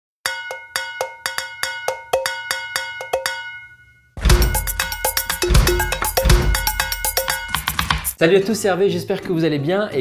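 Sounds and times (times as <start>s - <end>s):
ringing bell-like percussion: 0.3s - 8.2s.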